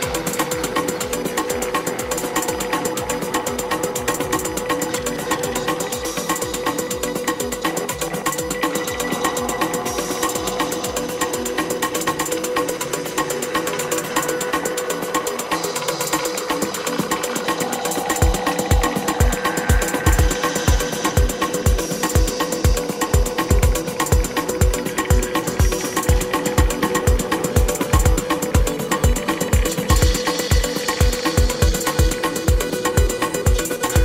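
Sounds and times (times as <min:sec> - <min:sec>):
fast hi-hats: 0:00.0 - 0:34.0
mid-pitched drone: 0:00.0 - 0:34.0
deep kick drum: 0:18.2 - 0:34.0.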